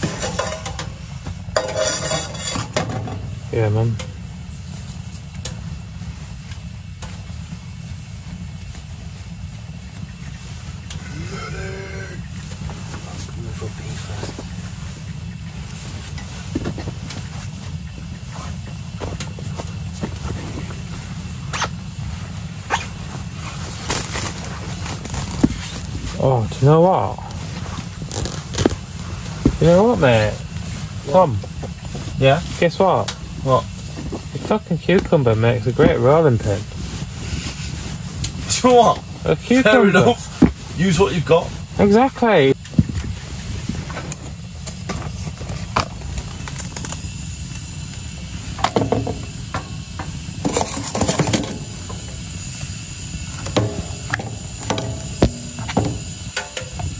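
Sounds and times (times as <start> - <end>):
pan knocks and clatter: 0.0 - 1.0
faint hiss: 0.0 - 56.9
steady low rumble: 0.0 - 56.9.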